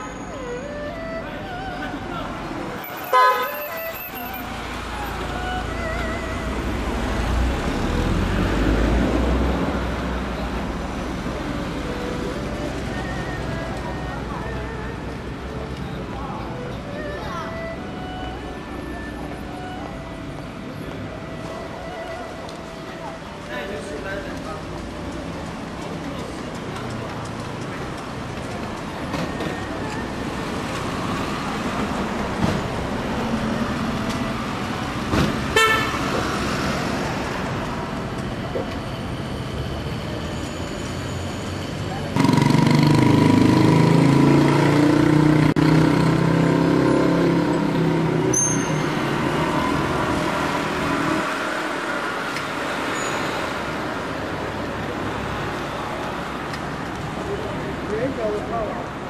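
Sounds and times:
road traffic: 0.0s - 59.0s
car horn toot: 2.9s - 4.4s, 35.6s - 36.0s
loud engine: 30.4s - 56.2s.

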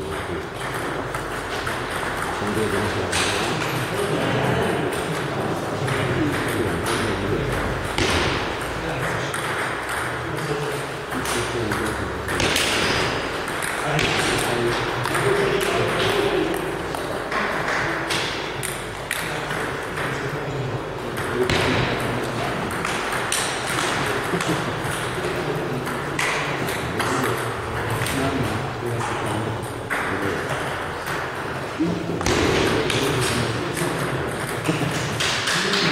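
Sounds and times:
table tennis balls clicking: 0.0s - 35.9s.

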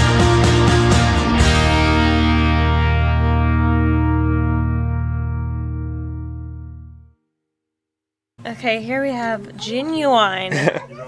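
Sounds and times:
distorted electric guitar chord: 0.0s - 7.1s.

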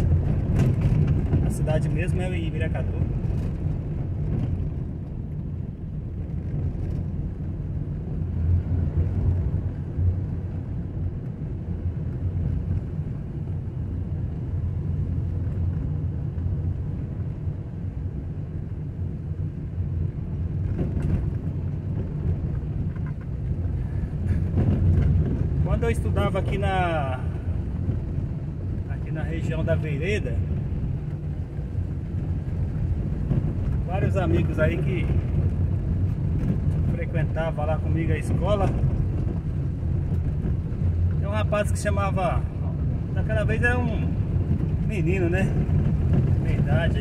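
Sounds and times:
car driving on dirt road: 0.0s - 47.0s.

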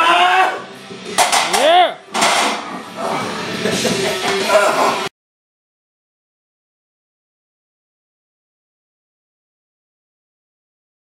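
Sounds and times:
loud yell: 0.0s - 0.7s
people shouting: 0.0s - 0.7s.

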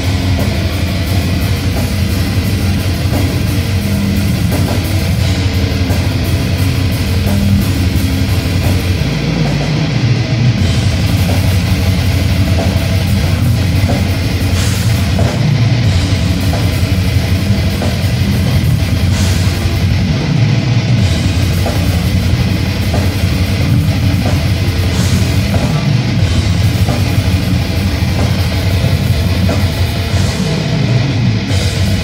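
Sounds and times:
death metal band playing live: 0.0s - 32.0s
distorted electric guitar riffing: 0.0s - 32.0s
drums: 0.0s - 32.0s.

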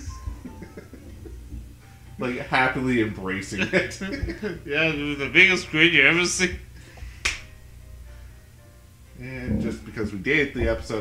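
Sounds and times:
sharp snap: 7.2s - 7.5s
low hum: 7.6s - 10.8s.

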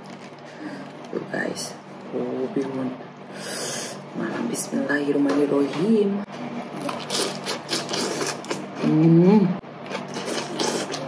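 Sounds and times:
noodles being slurped: 6.8s - 8.8s, 9.9s - 11.0s.

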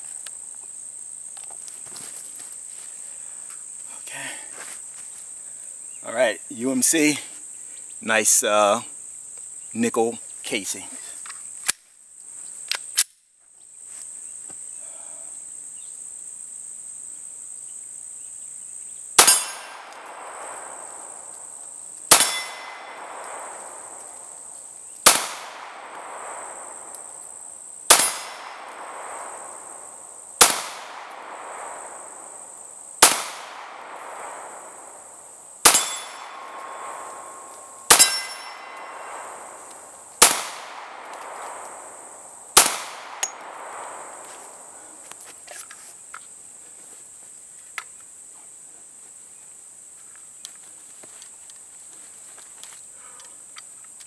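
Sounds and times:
high insect drone: 0.0s - 54.0s
metallic ping from steel target: 19.2s - 20.0s, 22.1s - 23.0s, 27.9s - 28.7s, 35.6s - 39.2s
pistol shots: 19.2s - 44.7s.

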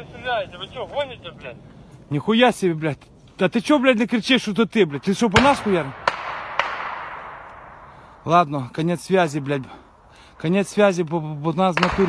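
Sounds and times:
rolling echo through forest: 0.0s - 12.0s
gunshots: 4.9s - 8.2s, 11.6s - 12.0s.

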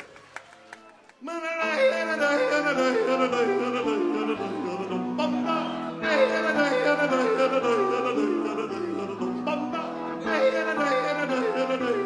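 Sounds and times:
man yodeling: 1.2s - 12.0s.

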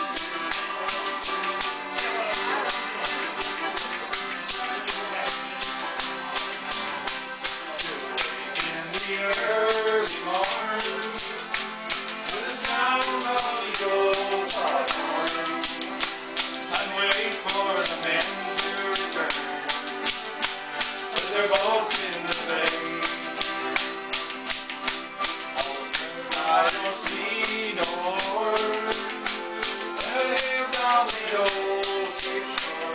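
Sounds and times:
acoustic guitar: 0.0s - 32.9s
button accordion: 0.0s - 32.9s
man singing folk tune: 0.0s - 32.9s.

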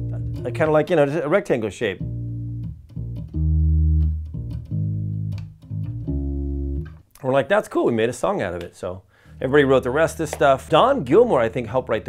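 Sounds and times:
electric bass riff: 0.0s - 1.0s, 2.0s - 7.1s, 9.2s - 11.6s.

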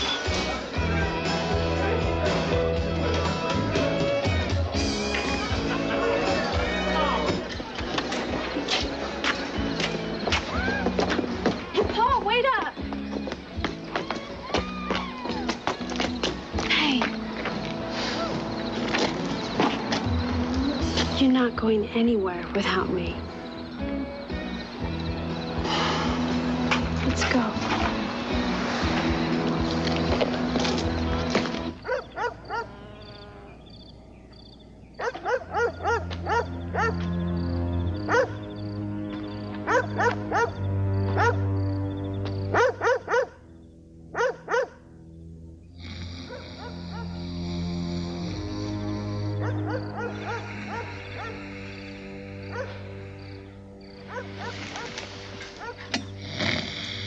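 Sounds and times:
low music score: 16.4s - 31.8s, 35.8s - 46.2s, 46.8s - 57.0s
dog barking: 31.8s - 32.7s, 35.0s - 37.0s, 38.1s - 38.4s, 39.6s - 40.6s, 41.2s - 41.5s, 42.5s - 43.4s, 44.1s - 44.8s, 46.3s - 47.2s, 49.4s - 51.4s, 52.5s - 52.8s, 54.0s - 55.9s.

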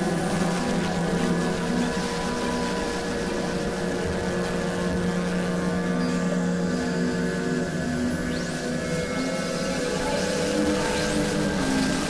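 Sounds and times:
sustained synthesizer tones: 0.0s - 12.0s.

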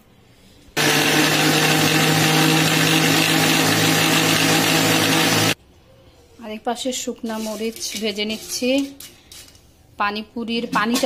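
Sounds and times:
mixer grinder motor whining: 0.8s - 5.6s.

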